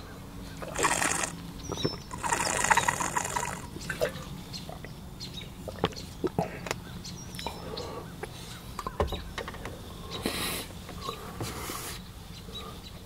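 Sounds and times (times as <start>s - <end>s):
sucking sips from water bottle: 0.6s - 3.7s.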